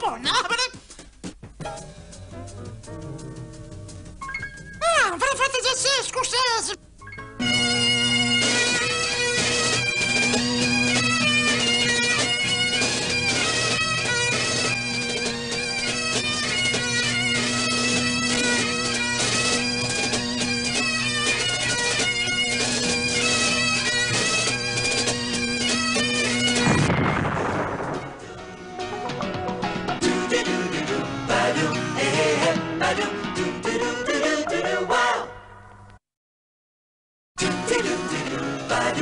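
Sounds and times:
bagpipe melody over drone: 7.4s - 26.8s.

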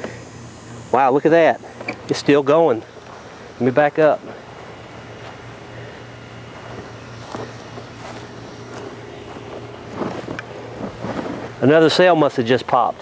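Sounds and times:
low hum: 0.0s - 12.0s
battery venting hiss: 0.0s - 13.0s.

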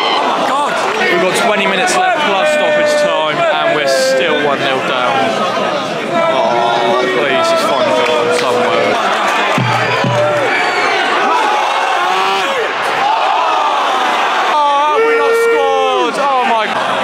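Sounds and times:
football crowd singing and shouting: 0.0s - 17.0s
loud drawn-out shout: 0.0s - 17.0s.

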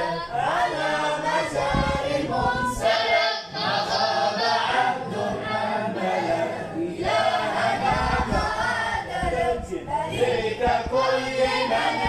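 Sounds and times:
boys' choir singing unaccompanied: 0.0s - 12.0s.

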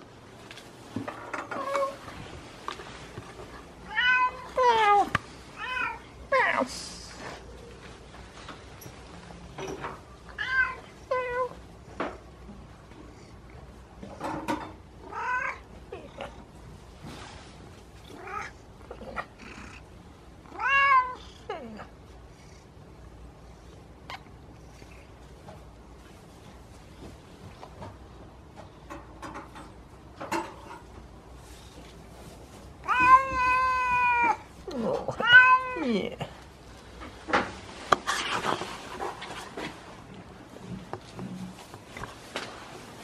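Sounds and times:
cat meowing: 3.9s - 6.0s, 15.1s - 15.7s, 20.5s - 21.2s, 32.8s - 34.5s, 35.1s - 35.8s.

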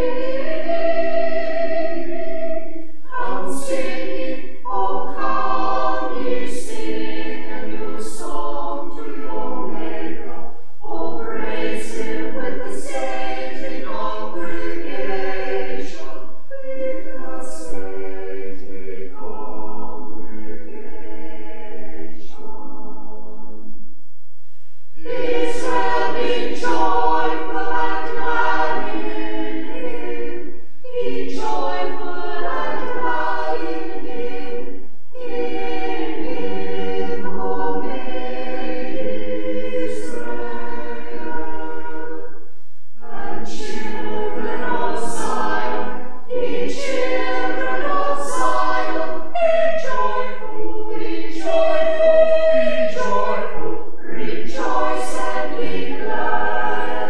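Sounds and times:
choir singing unaccompanied: 0.0s - 23.6s, 25.0s - 57.0s.

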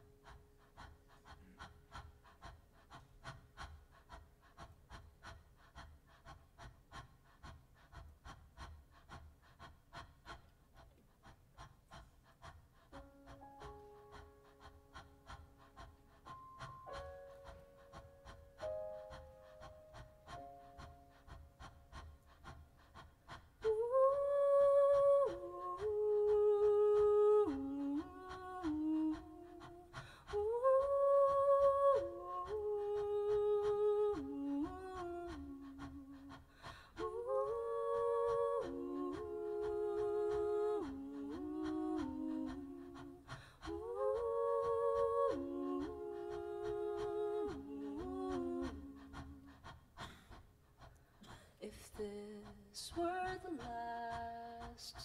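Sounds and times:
woman singing long notes: 23.6s - 49.5s, 51.6s - 55.0s.

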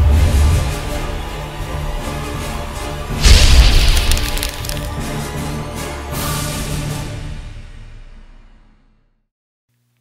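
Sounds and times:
theme music: 0.0s - 8.4s
crash with deep boom and splintering: 3.2s - 5.1s.

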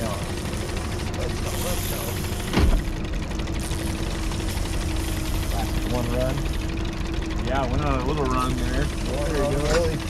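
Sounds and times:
outboard motor running: 0.0s - 10.0s.

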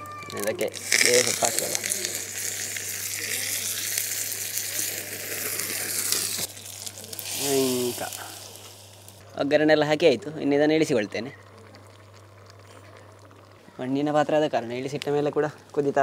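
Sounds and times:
leaves sizzling in hot oil: 0.0s - 16.0s.

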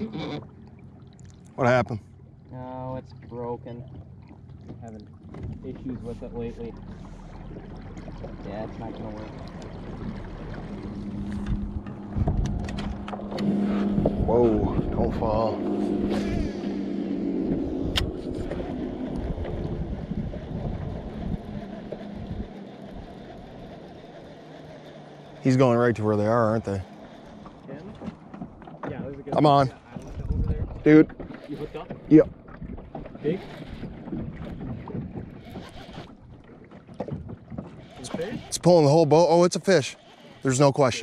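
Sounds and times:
boat motor humming: 0.0s - 41.0s
wind on microphone: 10.0s - 22.6s, 29.0s - 36.5s
fishing reel cranking: 21.2s - 27.6s, 33.1s - 34.6s, 35.3s - 36.3s, 37.8s - 41.0s.

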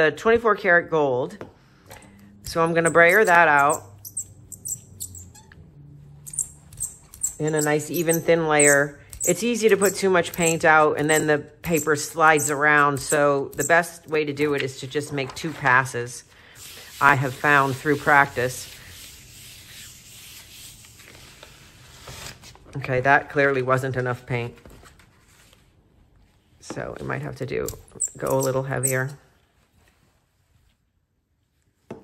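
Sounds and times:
hands rubbing paper: 16.6s - 22.3s.

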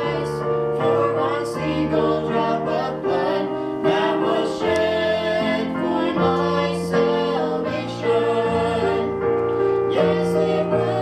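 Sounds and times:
piano accompaniment: 0.0s - 11.0s.

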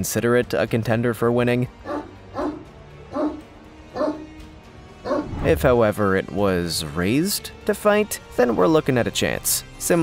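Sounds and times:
quiet background music: 0.0s - 10.0s
dog barking: 1.8s - 4.3s, 5.0s - 5.3s.

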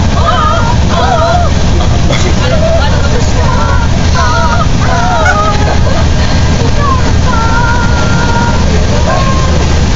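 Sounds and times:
bus engine rumble: 0.0s - 9.9s
road noise: 0.0s - 9.9s
girls singing together: 3.3s - 9.6s.

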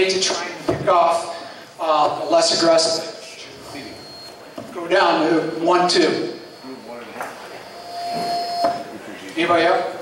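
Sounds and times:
steady pitched tone: 4.9s - 9.1s.

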